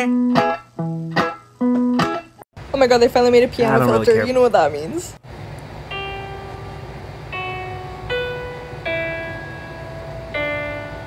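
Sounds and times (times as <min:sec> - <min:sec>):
digital piano notes: 0:05.8 - 0:11.0.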